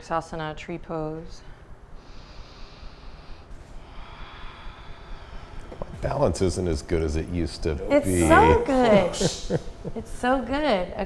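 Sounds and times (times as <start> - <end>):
people breathing through noses: 1.5 - 5.9.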